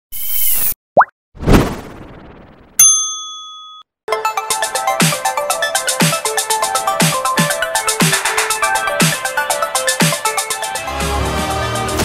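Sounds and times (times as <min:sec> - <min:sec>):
swish: 0:01.4 - 0:02.8
whoosh: 0:01.4 - 0:02.8
bell-like ding: 0:02.8 - 0:03.9
electronic music with steady beat: 0:04.1 - 0:12.0.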